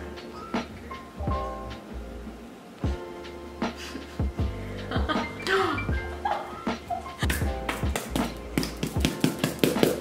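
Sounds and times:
rapid sharp taps: 7.3s - 10.0s.

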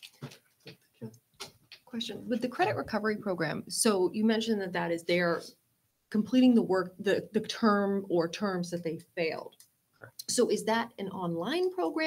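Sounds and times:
person speaking: 1.8s - 5.6s.

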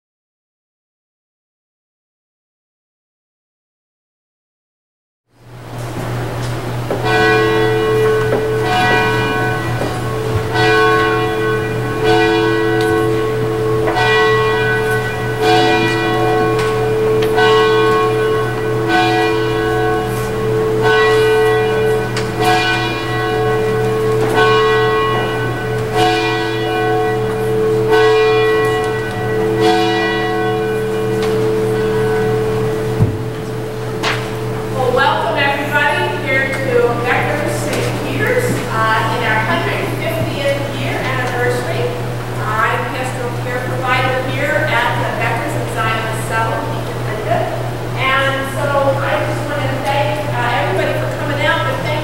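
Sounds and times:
steady low hum: 5.3s - 52.0s
church bell tolling: 5.5s - 52.0s.

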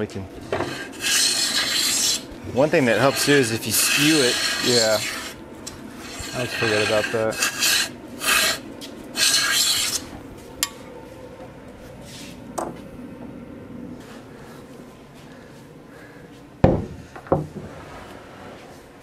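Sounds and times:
hand plane rasping on wood: 0.4s - 8.6s, 9.2s - 10.1s
heavy wooden knocks: 16.6s - 17.7s.

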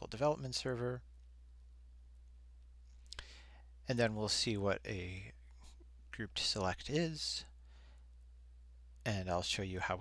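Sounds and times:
man speaking: 0.0s - 1.1s, 3.8s - 5.5s, 6.1s - 7.6s, 9.0s - 10.0s
low steady hum: 0.0s - 10.0s
intake of breath: 3.2s - 3.7s, 7.6s - 8.1s.

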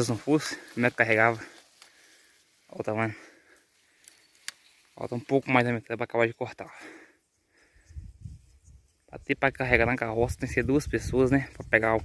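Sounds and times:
man speaking: 0.0s - 1.6s, 2.7s - 3.4s, 5.0s - 6.8s, 9.1s - 12.0s.

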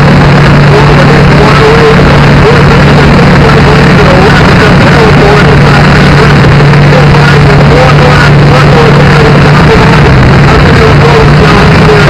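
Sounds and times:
distorted engine-like drone: 0.0s - 12.0s.

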